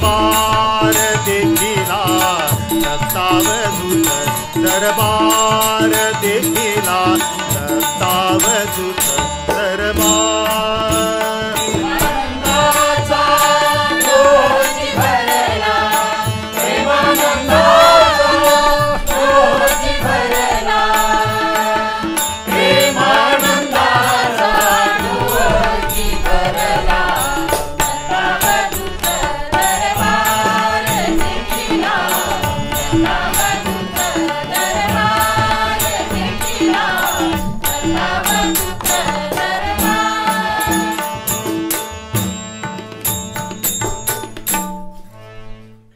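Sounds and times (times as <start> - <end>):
group devotional singing: 0.0 - 7.0, 9.8 - 41.3
sharp percussive strikes: 0.0 - 45.3
tabla: 0.0 - 45.7
harmonium chords: 0.0 - 45.9.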